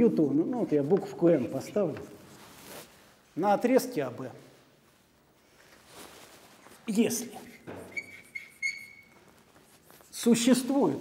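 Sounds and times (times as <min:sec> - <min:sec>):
chalk squeaking on blackboard: 0:07.4 - 0:10.2.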